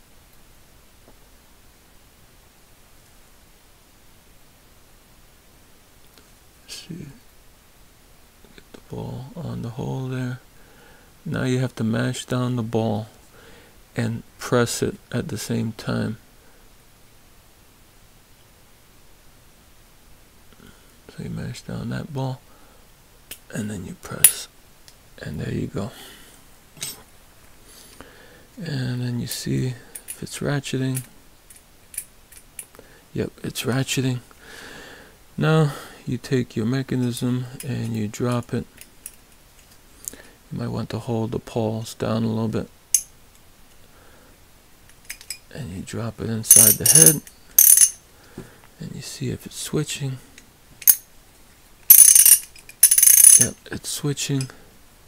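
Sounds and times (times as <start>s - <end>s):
ratchet clicking: 46.5s - 48.0s, 51.9s - 53.5s.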